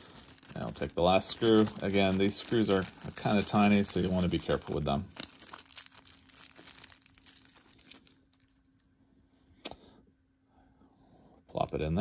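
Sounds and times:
plastic bag crinkling: 0.0 - 8.8.

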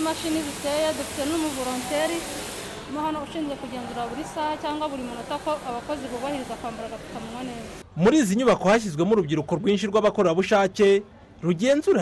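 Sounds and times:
steady hiss: 0.0 - 3.2
woman speaking: 0.0 - 7.8.

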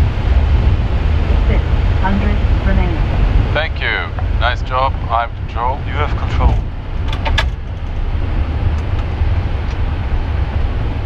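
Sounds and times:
deep rumble of aircraft rolling: 0.0 - 11.0
crew voices: 3.5 - 6.6.

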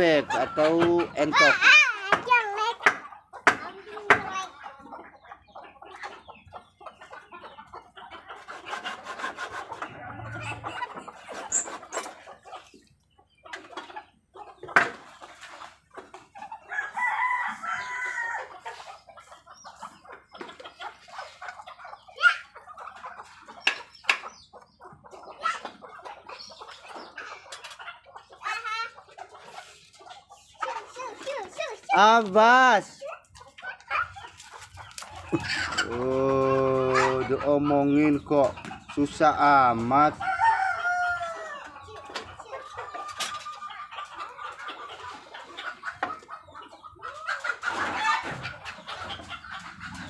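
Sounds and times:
chickens clucking: 0.0 - 50.0.

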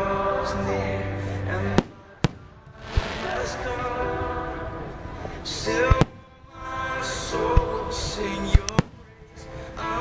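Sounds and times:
song with singing: 0.0 - 10.0
fireworks bangs: 1.5 - 4.1, 5.5 - 6.4, 8.4 - 9.2.

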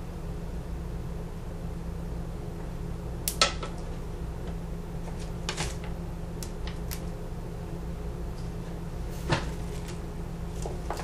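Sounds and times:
steady low hum: 0.0 - 11.0
hands handling berry sprigs: 8.4 - 11.0.

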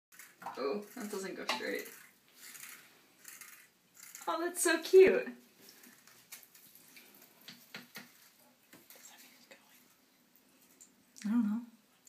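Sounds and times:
light water sounds: 5.6 - 11.0.

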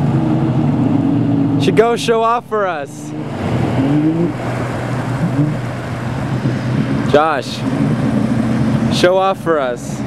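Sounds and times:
rush of wind and water: 0.0 - 10.0
watercraft engine running: 0.0 - 10.0.

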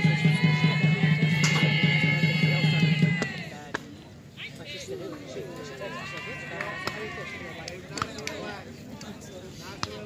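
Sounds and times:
people calling out: 0.0 - 3.6.

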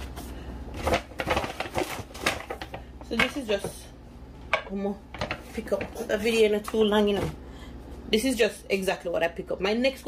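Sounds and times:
plastic bag rustling: 0.0 - 2.8.

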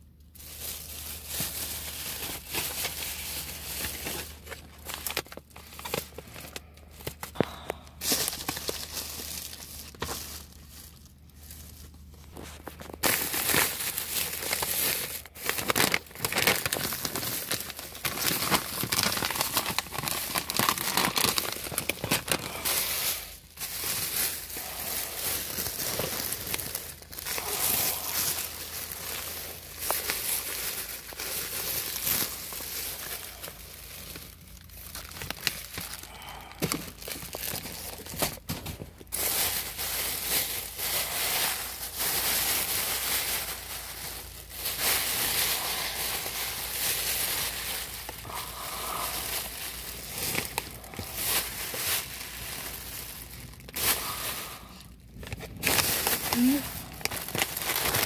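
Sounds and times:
plastic bags crinkling: 0.0 - 58.0.

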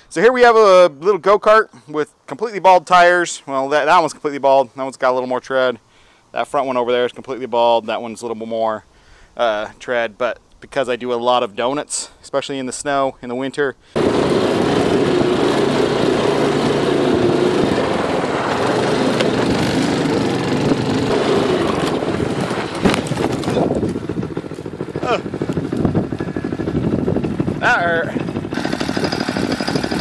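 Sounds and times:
go-kart engine running: 14.0 - 30.0
wind noise on microphone: 14.0 - 30.0
man shouting: 25.0 - 25.3.

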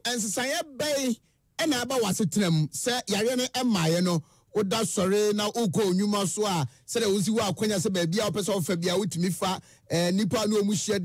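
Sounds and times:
person talking fast: 0.0 - 11.0.

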